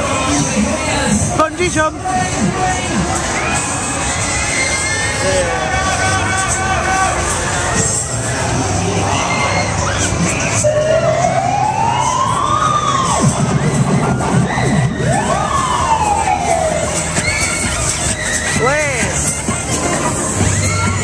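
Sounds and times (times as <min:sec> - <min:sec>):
fairground crowd shouting: 0:00.0 - 0:21.0
siren-like wail: 0:09.1 - 0:18.6.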